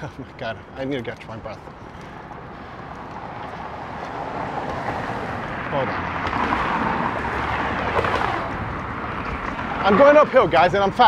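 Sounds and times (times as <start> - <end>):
car traffic passing: 0.0 - 11.0.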